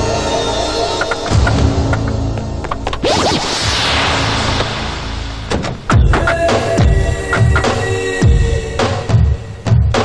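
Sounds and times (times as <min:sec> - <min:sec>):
whoosh sound effect: 0:03.0 - 0:05.8.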